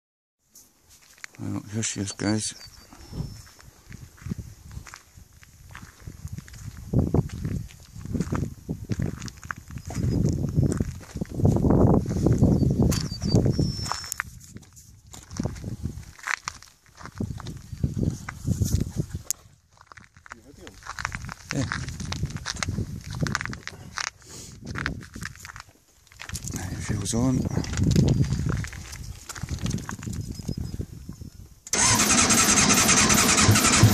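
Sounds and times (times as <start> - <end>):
footsteps on gravel: 0.8 - 1.6, 2.8 - 30.4
wind buffeting microphone: 2.8 - 19.8, 20.7 - 25.6, 26.2 - 31.6.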